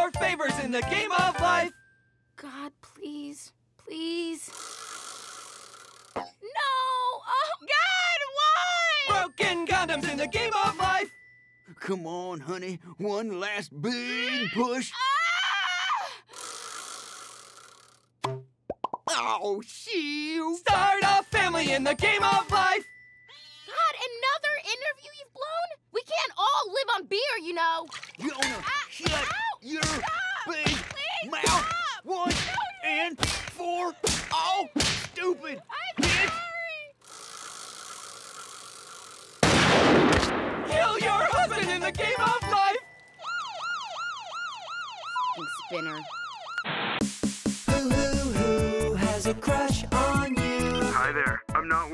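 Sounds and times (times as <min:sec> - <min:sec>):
woman screaming: 0:06.6 - 0:09.1, 0:14.1 - 0:16.2, 0:28.6 - 0:32.9
loud pistol shot: 0:39.4 - 0:40.7.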